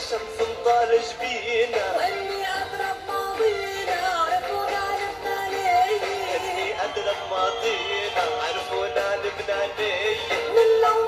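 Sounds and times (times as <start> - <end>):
musical accompaniment: 0.0 - 11.0
woman singing pop song: 1.5 - 7.3, 8.2 - 11.0.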